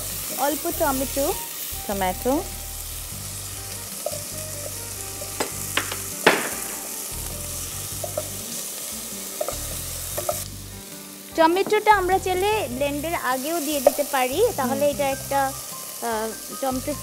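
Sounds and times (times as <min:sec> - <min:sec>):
food sizzling in hot oil: 0:00.0 - 0:17.0
spoon knocking on pot: 0:05.2 - 0:07.0.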